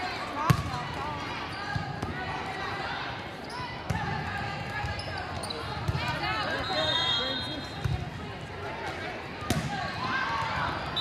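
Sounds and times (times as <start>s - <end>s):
chatter of players and spectators: 0.0s - 11.0s.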